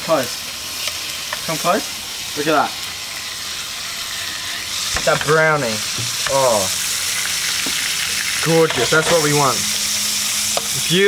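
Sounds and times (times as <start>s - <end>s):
fish frying in oil: 0.0s - 11.0s.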